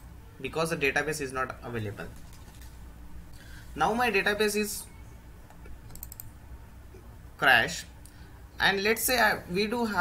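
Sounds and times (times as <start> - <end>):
low steady hum: 0.0 - 10.0
computer mouse clicks: 5.5 - 6.4.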